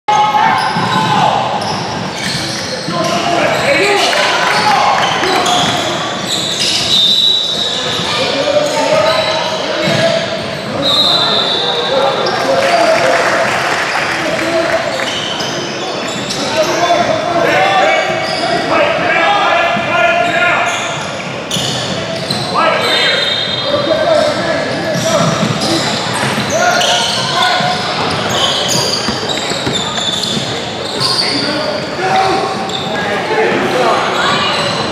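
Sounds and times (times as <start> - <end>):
sneaker squeaks: 0.1 - 12.9, 14.9 - 18.9, 20.0 - 33.2, 34.0 - 34.9
basketball bouncing on hardwood: 29.0 - 30.4.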